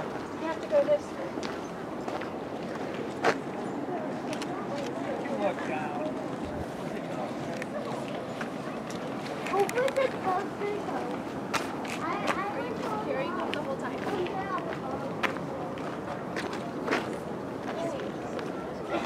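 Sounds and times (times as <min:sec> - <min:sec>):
footsteps on pavement: 0:00.0 - 0:03.5, 0:04.2 - 0:18.6
distant people chattering: 0:00.0 - 0:19.0.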